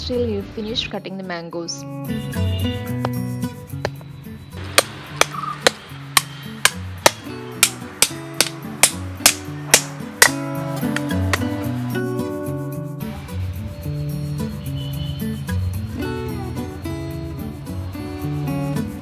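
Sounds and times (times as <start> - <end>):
background music: 0.0 - 19.0
knife chopping on wooden block: 4.8 - 11.5.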